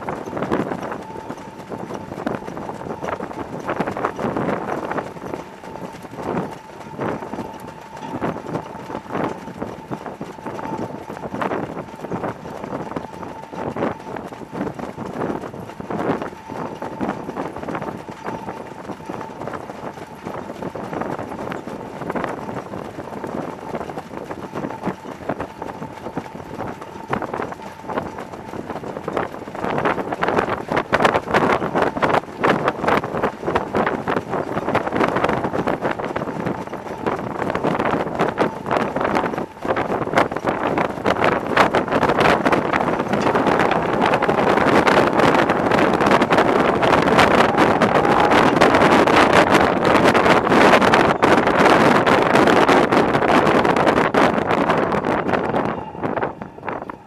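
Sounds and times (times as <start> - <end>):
horse hoofbeats on dirt track: 0.0 - 55.7
rush of running noise: 0.0 - 57.0.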